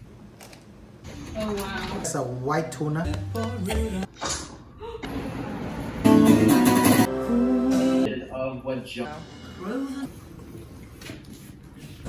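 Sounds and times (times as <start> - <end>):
acoustic guitar music: 5.8 - 8.1.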